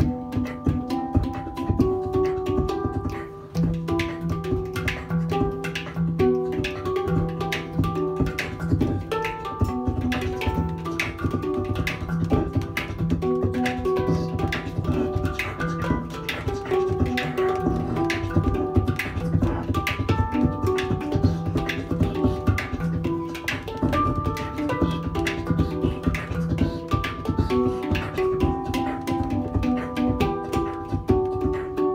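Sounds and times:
beatboxing: 0.0 - 31.9
handpan ringing notes: 0.0 - 31.9.

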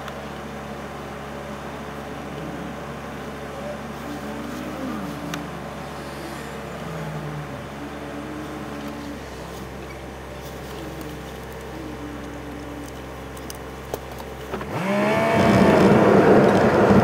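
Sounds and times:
car engine idling: 0.0 - 17.0
vehicles passing: 0.0 - 17.0.

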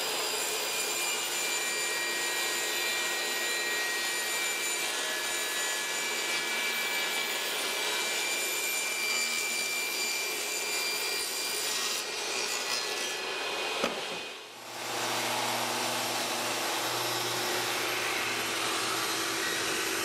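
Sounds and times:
table saw cutting plywood: 0.0 - 20.0.

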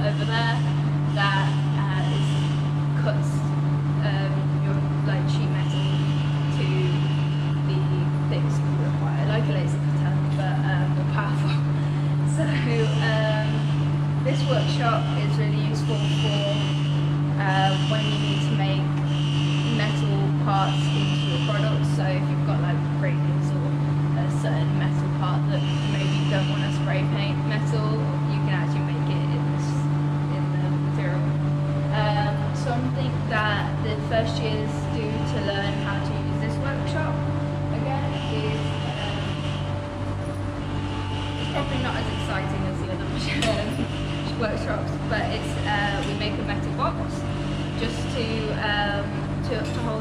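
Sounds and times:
woman talking: 0.0 - 2.4, 3.0 - 13.6, 14.2 - 16.7, 17.3 - 19.0, 19.7 - 39.4, 41.5 - 50.0
low mechanical hum: 0.0 - 50.0.

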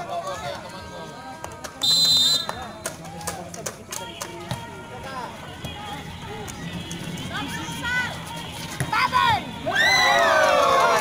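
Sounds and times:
spectators chattering: 0.0 - 11.0
referee's whistle blast: 1.8 - 2.6.

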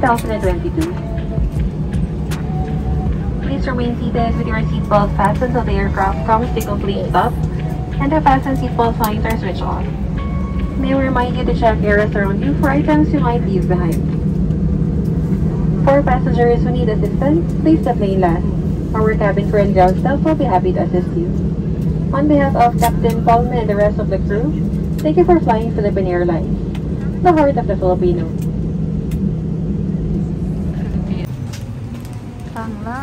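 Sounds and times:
cabin announcement over speaker: 0.0 - 14.2, 15.5 - 28.5, 30.0 - 33.0
airplane cabin rumble: 0.0 - 33.0.

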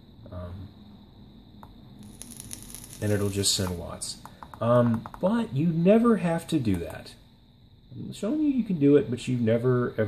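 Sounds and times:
e-liquid sizzling on a coil: 2.0 - 4.2.

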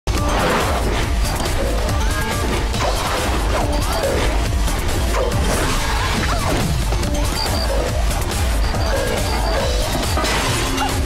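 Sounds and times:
dramatic background music: 0.1 - 11.0.

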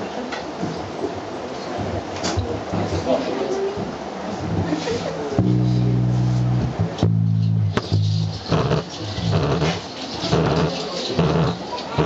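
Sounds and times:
live band music with electric bass: 5.4 - 11.6.

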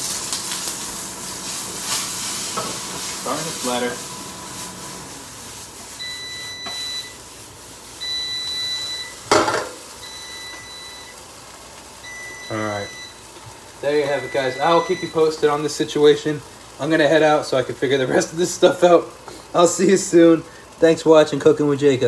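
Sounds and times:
frying sizzle: 0.0 - 22.0
appliance beeping: 2.8 - 7.3, 7.9 - 16.2.

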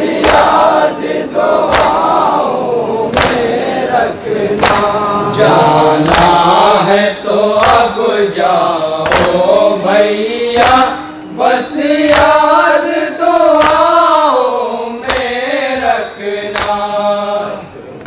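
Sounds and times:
men chanting a lament: 0.0 - 18.0.

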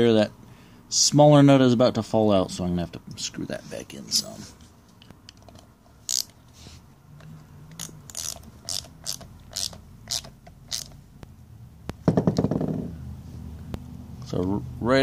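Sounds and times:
socket wrench rattling: 5.4 - 6.4, 7.8 - 11.0.

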